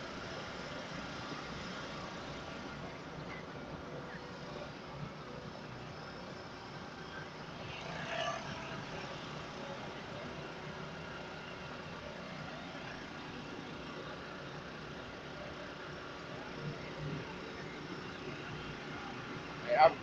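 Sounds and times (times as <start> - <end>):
truck engines idling: 8.6 - 20.0
man talking: 19.6 - 20.0.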